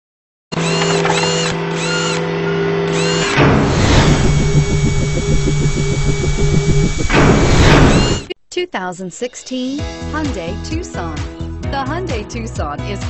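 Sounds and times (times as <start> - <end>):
fast mechanical pulsing: 0.6 - 2.3, 2.9 - 8.3
high squeal: 0.6 - 8.3
mechanical whirring: 0.6 - 8.3
whoosh: 3.4 - 8.3.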